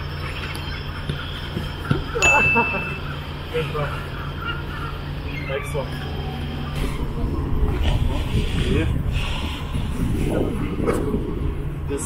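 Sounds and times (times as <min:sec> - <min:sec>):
indistinct voices talking: 0:00.0 - 0:12.0
low background rumble: 0:00.0 - 0:12.0.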